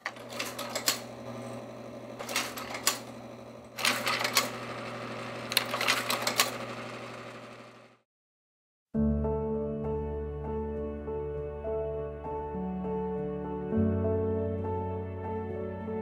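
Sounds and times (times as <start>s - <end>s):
slide mechanism clacking: 0.0s - 1.1s
projector fan motor humming: 0.0s - 8.0s.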